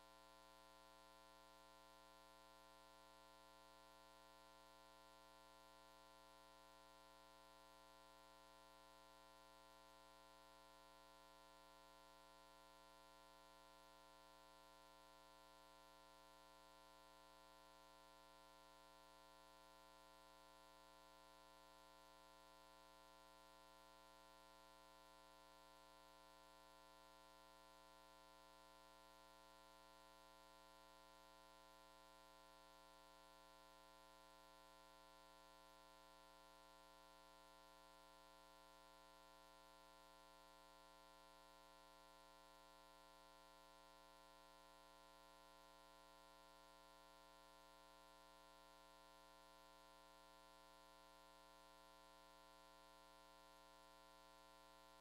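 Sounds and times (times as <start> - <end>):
faint steady hum: 0.0 - 55.0.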